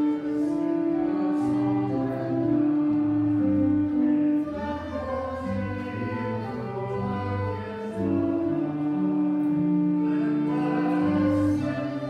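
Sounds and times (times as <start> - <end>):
accompanying music: 0.0 - 12.0
group singing a hymn: 0.0 - 12.0.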